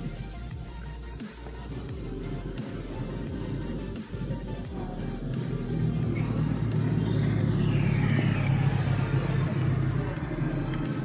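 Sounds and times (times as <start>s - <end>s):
background music: 0.0s - 11.0s
vehicle passing rumble: 0.0s - 11.0s.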